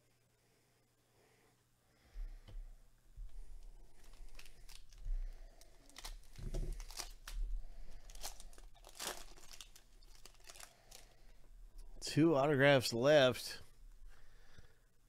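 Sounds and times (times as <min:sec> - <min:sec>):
plastic wrapper crinkling and tearing: 0:03.6 - 0:11.3.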